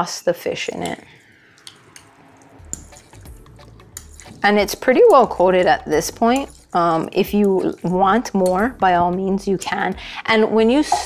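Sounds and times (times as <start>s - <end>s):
spoon squishing wet fish: 6.2s - 8.6s.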